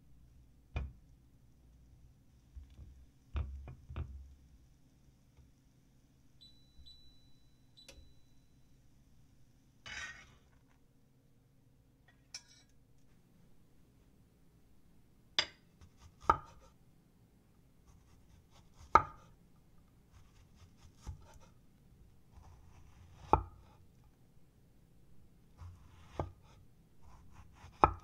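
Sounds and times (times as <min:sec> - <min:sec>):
spatula scraping a pan: 0:09.8 - 0:10.6.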